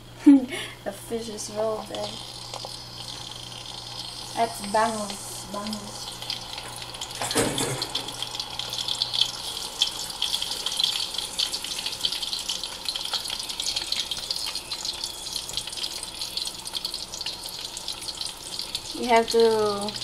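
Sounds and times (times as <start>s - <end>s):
fish deep-frying in oil: 1.0s - 20.0s.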